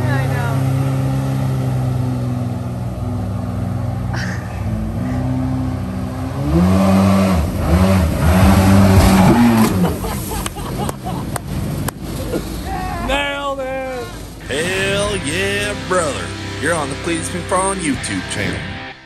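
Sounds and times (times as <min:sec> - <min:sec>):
boat engine revving: 0:00.0 - 0:18.9.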